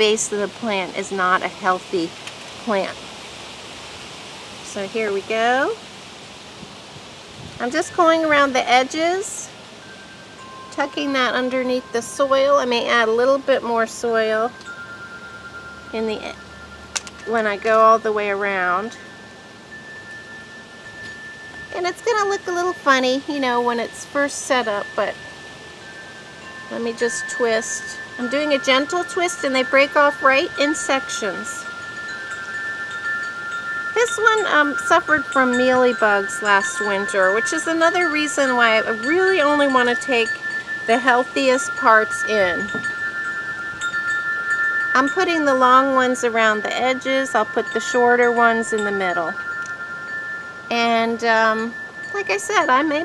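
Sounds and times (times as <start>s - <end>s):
steady hiss: 0.0s - 53.0s
wind chimes ringing: 0.0s - 53.0s.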